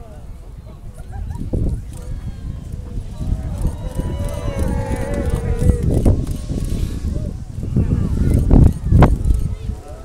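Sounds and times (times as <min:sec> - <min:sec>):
low rumble: 0:01.2 - 0:09.8
crowd exclaiming ooh: 0:02.0 - 0:06.2.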